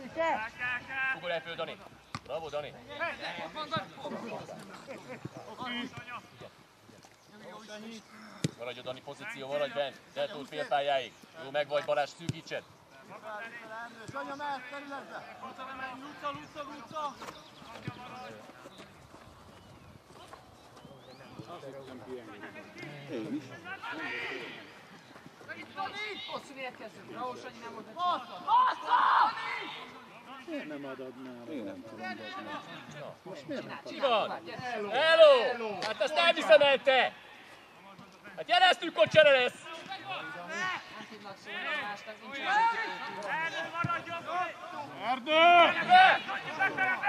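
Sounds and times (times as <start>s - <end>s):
distant players shouting: 28.0s - 30.4s, 38.5s - 47.0s.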